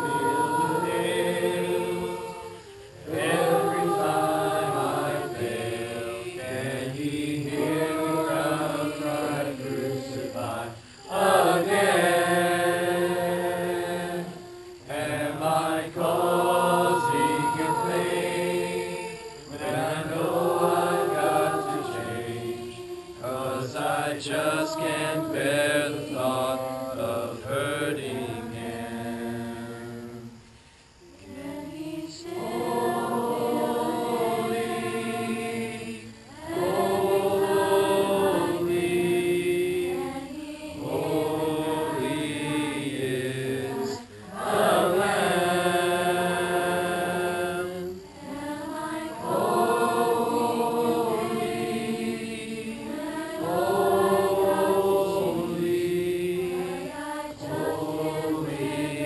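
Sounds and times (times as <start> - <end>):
congregation singing a hymn: 0.0 - 59.0.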